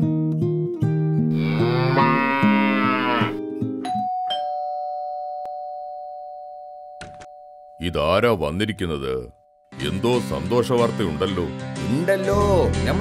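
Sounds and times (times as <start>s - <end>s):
cow mooing: 1.4s - 3.4s
two-note doorbell chime: 3.8s - 7.9s.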